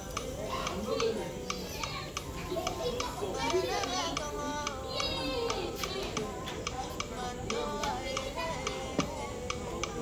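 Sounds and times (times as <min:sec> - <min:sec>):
background music with steady beat: 0:00.0 - 0:10.0
children's voices: 0:00.0 - 0:10.0
people chattering: 0:00.0 - 0:10.0.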